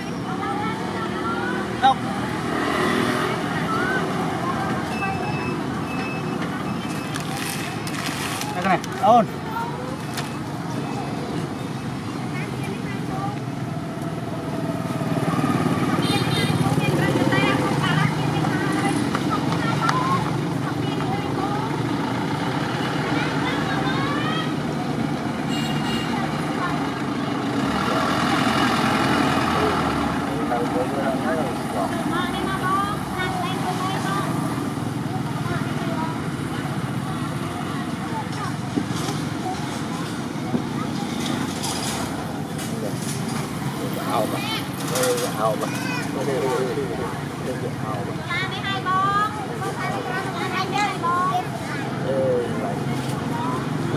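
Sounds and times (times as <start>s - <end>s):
vehicle passing by: 0.0s - 4.9s, 12.2s - 25.5s, 26.1s - 53.9s
steady road traffic: 0.0s - 53.9s.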